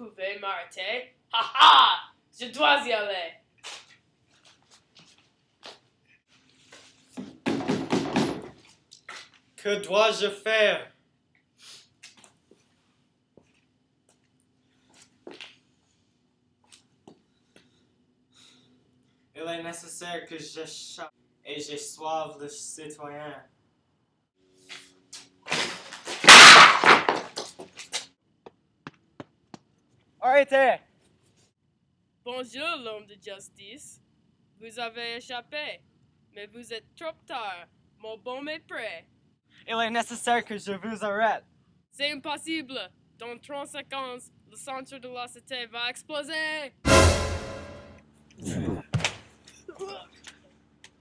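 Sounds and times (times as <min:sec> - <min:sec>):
clattering knock and rattle: 0:07.2 - 0:08.6.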